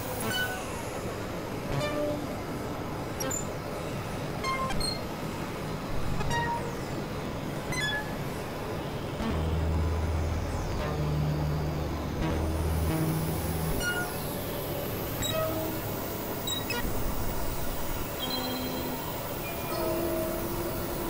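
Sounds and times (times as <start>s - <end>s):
hiss-like electronic wash: 5.1s - 21.0s
short electronic blips: 7.7s - 8.2s
deep low drone: 9.2s - 16.3s.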